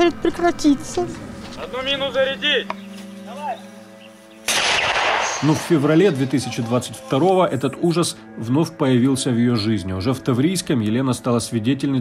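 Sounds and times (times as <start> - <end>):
mortar firing blast: 4.5 - 5.8.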